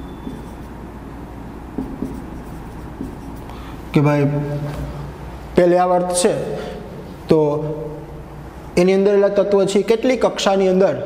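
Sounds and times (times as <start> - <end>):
marker scratching on whiteboard: 0.0 - 0.8, 1.7 - 3.6
low steady hum: 0.0 - 10.0.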